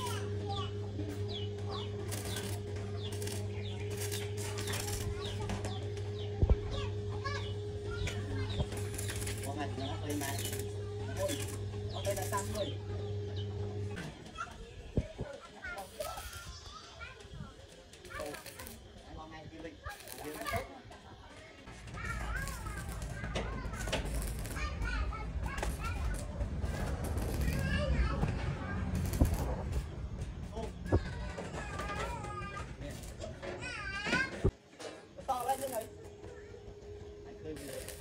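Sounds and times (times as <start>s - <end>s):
birds chirping: 0.0s - 20.8s
arc welder humming: 0.0s - 38.0s
steady low rumble: 21.9s - 31.3s.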